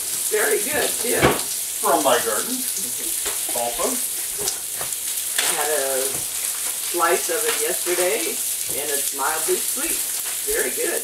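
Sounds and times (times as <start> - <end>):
steak sizzling on a grill: 0.0 - 11.0.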